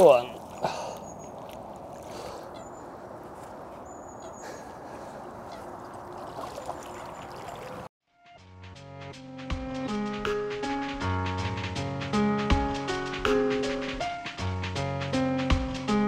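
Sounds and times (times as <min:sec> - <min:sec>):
water sloshing and trickling: 0:00.0 - 0:07.9
music: 0:08.0 - 0:16.0.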